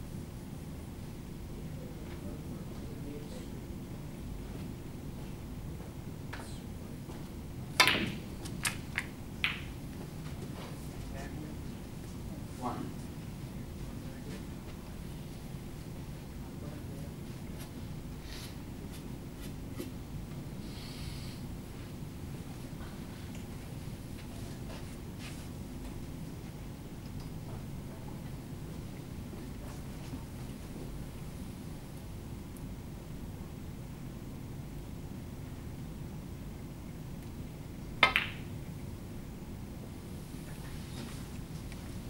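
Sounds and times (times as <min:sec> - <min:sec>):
low room hum: 0:00.0 - 0:42.0
cue tip striking ball: 0:07.8 - 0:09.8, 0:38.0 - 0:38.5
snooker balls clacking: 0:07.8 - 0:09.8, 0:38.0 - 0:38.5.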